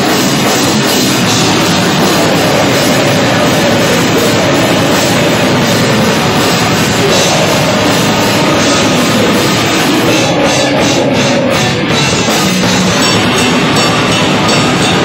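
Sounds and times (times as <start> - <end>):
rock band playing live: 0.0 - 15.0.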